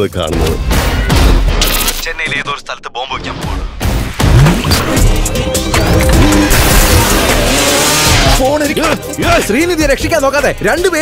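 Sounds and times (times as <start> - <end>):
pounding film score: 0.0 - 11.0
motorcycle engine revving: 4.2 - 8.5.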